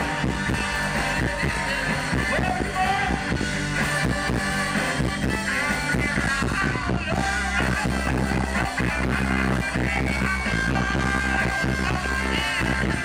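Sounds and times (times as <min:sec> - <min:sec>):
electric bass: 0:00.0 - 0:13.0
live band music: 0:00.0 - 0:13.0
trumpet: 0:00.0 - 0:13.0.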